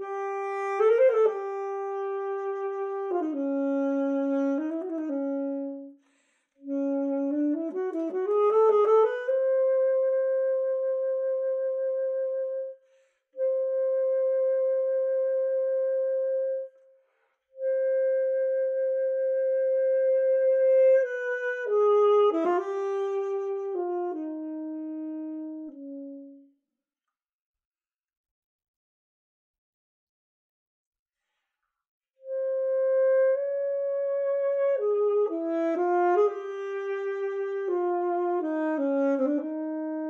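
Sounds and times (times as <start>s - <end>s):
alto saxophone playing: 0.0s - 6.0s, 6.6s - 12.8s, 13.4s - 16.7s, 17.6s - 26.6s, 32.2s - 40.0s.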